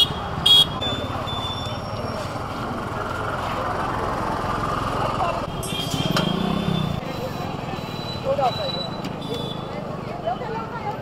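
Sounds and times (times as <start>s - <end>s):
vehicle horn beep: 0.0s - 1.9s, 5.5s - 7.4s, 8.0s - 9.7s
street traffic: 0.0s - 11.0s
people talking: 3.4s - 5.5s, 6.5s - 11.0s.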